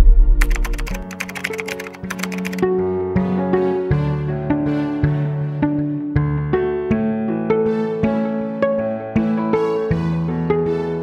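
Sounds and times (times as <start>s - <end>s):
keyboard typing clicks: 0.4s - 2.6s
background music with held notes: 2.6s - 11.0s.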